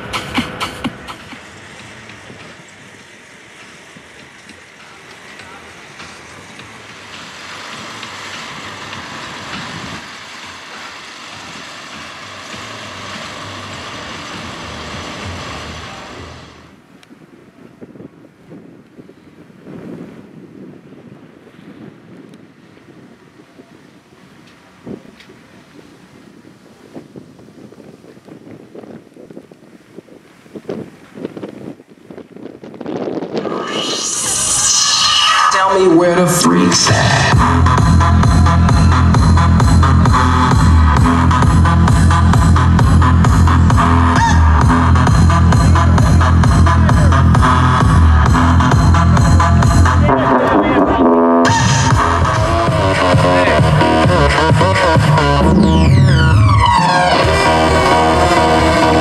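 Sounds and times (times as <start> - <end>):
electronic dance music: 0.0 - 2.6, 33.4 - 59.0
wind rushing on microphone: 0.0 - 35.8.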